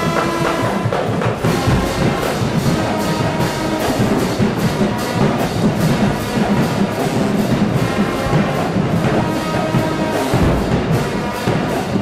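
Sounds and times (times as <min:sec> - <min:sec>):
brass instruments playing: 0:00.0 - 0:12.0
snare and bass drums beat: 0:00.0 - 0:12.0.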